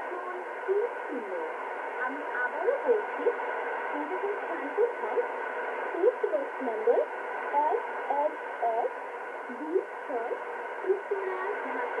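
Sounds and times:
radio static hiss: 0.0 - 12.0
person speaking over radio: 9.5 - 12.0.

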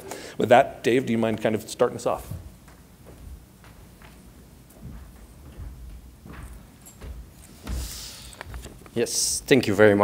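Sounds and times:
footsteps on a stage: 2.1 - 9.1.

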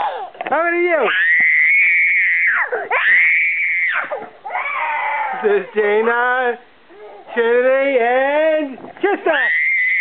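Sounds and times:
girl screaming: 1.1 - 5.4.

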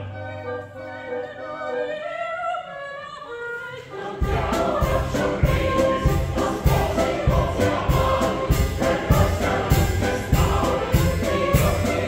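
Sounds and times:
choir singing: 0.0 - 12.0
steady drum beat: 4.2 - 12.0
folk band playing: 4.3 - 12.0.

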